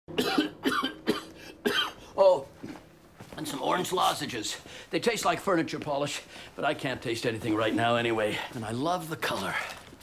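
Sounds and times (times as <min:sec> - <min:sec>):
man coughing: 0:00.1 - 0:02.2.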